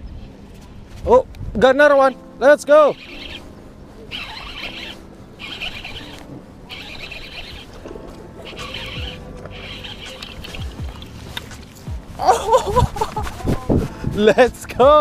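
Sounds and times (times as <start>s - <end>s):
fishing reel whirring: 2.9s - 3.4s, 4.1s - 11.1s.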